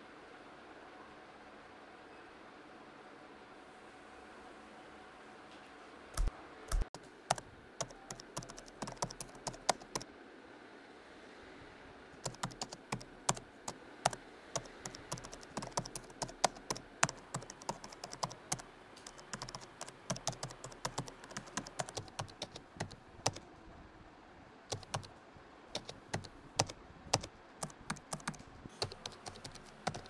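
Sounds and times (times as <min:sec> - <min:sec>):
typing on laptop keyboard: 0:06.2 - 0:10.0, 0:12.2 - 0:13.4, 0:14.0 - 0:23.4, 0:24.7 - 0:25.1, 0:25.7 - 0:30.0.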